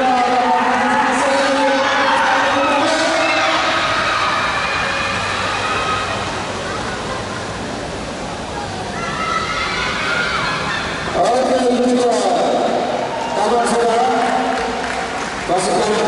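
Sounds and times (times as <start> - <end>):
echoing public address commentary: 0.0 - 3.9, 11.2 - 16.0
crowd noise in a hall: 0.0 - 16.0.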